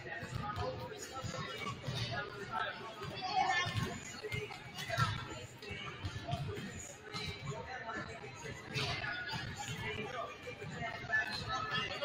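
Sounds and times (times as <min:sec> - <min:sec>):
young players chattering: 0:00.0 - 0:12.0.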